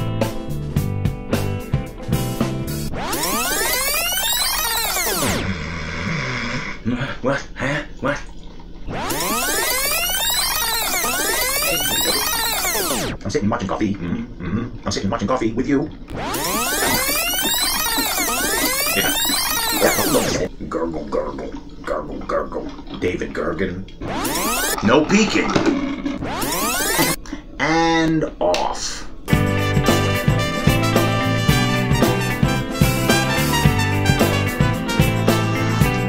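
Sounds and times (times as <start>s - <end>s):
synthesizer sweep: 2.8s - 5.6s, 8.9s - 13.2s, 16.1s - 20.5s, 24.0s - 24.9s, 26.1s - 27.2s
gliding electronic tones: 2.9s - 5.5s, 8.9s - 13.2s, 16.1s - 20.5s, 24.0s - 27.2s.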